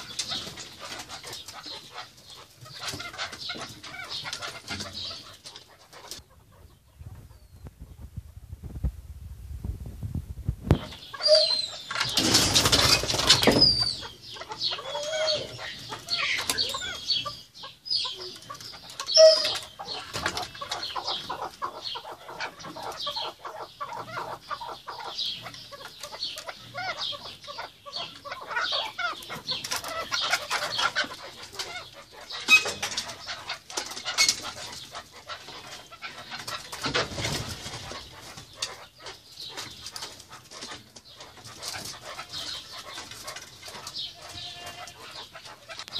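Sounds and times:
partridges clucking calls: 0.0s - 8.1s, 10.6s - 45.9s.

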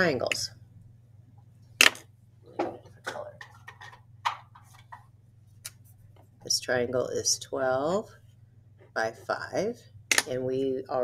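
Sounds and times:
faint low hum: 0.0s - 11.0s.

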